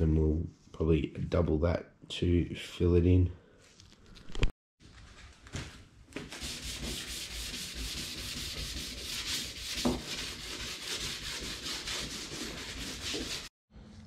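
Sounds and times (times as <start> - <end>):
hand sanding scratchy strokes: 6.3 - 13.5.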